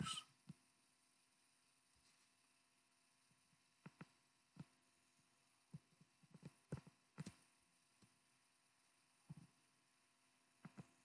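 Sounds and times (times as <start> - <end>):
stylus tapping on tablet screen: 3.8 - 4.8, 5.7 - 8.2, 10.6 - 11.0.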